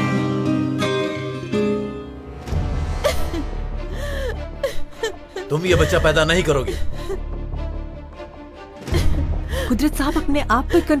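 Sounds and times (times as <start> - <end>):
background music: 0.0 - 11.0
woman sobbing: 3.0 - 7.4, 8.8 - 11.0.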